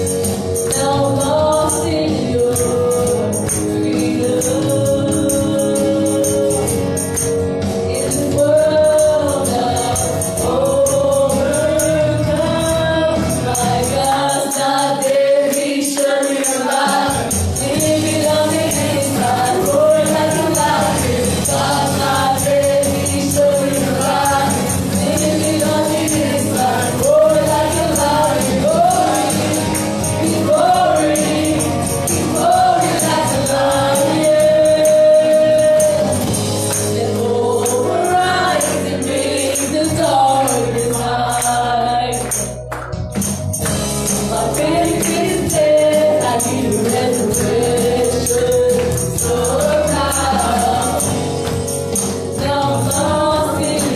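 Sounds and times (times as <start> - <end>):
other voices singing: 0.0 - 42.6, 44.1 - 53.9
live band accompaniment: 0.0 - 53.9
woman singing gospel song: 0.6 - 7.0, 7.9 - 42.6, 44.2 - 51.6, 52.4 - 53.9.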